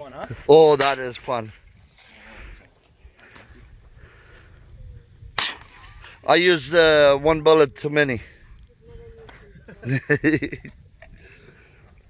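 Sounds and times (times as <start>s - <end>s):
low wind rumble: 1.5s - 12.0s
rifle shot: 5.4s - 6.1s.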